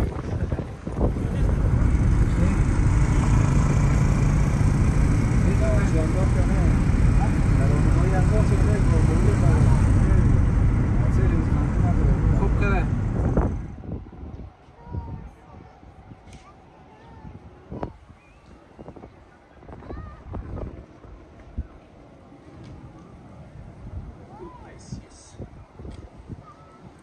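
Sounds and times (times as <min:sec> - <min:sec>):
car driving on road: 0:00.0 - 0:13.9
faint voices: 0:00.0 - 0:27.0.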